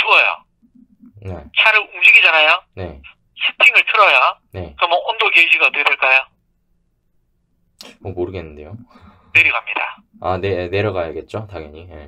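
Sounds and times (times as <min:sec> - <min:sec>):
person speaking: 0:00.0 - 0:06.4, 0:07.8 - 0:10.8.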